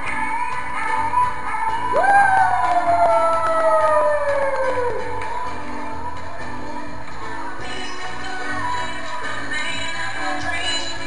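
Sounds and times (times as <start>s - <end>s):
person whooping: 1.9s - 5.2s
loud dance music: 1.9s - 5.8s.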